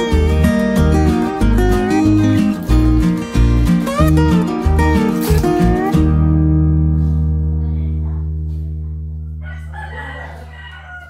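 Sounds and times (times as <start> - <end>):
low guitar note: 0.0 - 9.4.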